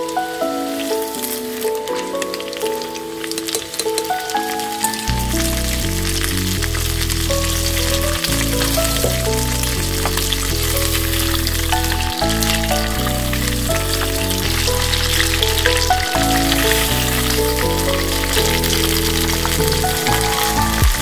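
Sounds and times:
background music: 0.0s - 21.0s
food deep-frying in oil: 0.0s - 21.0s.

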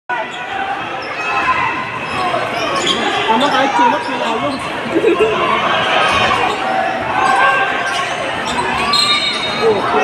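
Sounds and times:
voices of players and spectators: 0.1s - 10.0s.

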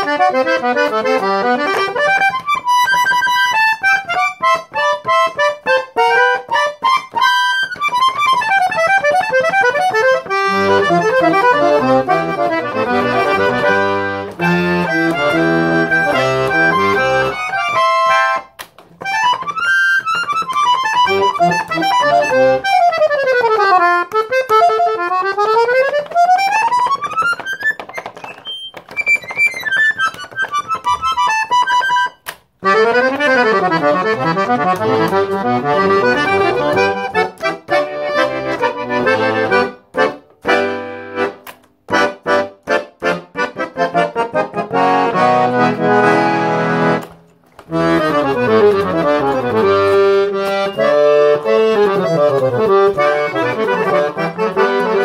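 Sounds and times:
accordion bass and chord buttons: 0.0s - 55.0s
accordion scale runs: 0.0s - 55.0s.

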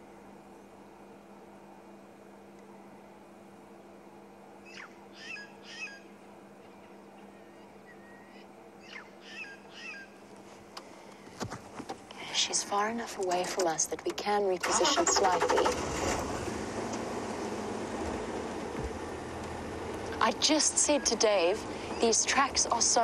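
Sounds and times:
steady low hum: 0.0s - 23.0s
birds whistling: 4.6s - 10.2s, 20.8s - 22.3s.

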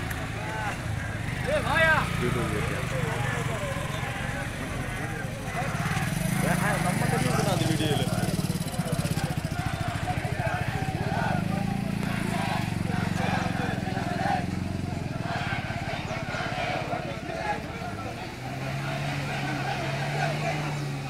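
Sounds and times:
crowd chanting and shouting: 0.0s - 21.0s
motorcycle engine running: 0.0s - 21.0s.

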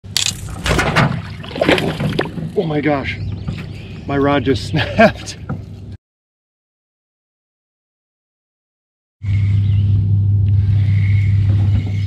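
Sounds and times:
fishing rod snapping: 0.1s - 0.8s
water splashing and sloshing: 0.1s - 3.8s.

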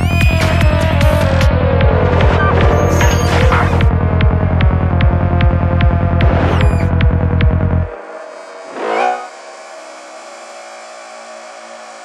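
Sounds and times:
rolling bassline: 0.0s - 8.0s
psytrance music: 0.0s - 12.0s
steady kick drum: 3.8s - 7.9s.

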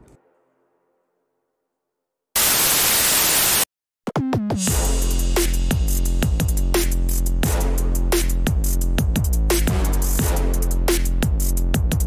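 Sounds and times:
loud burst of static hiss: 2.4s - 3.7s.

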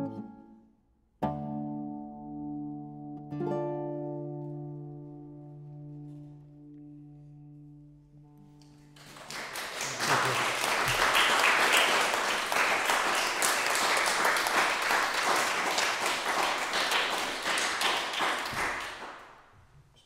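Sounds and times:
audience applauding: 9.0s - 19.5s.

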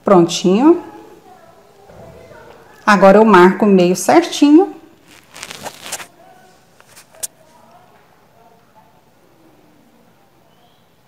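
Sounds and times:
cloth rustling: 4.9s - 7.6s.

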